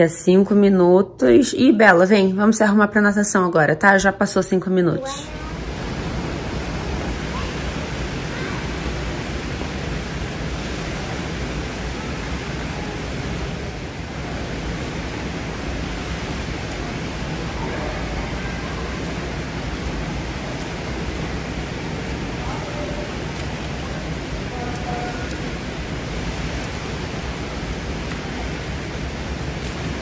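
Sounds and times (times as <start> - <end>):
swimmers splashing water: 5.2 - 30.0.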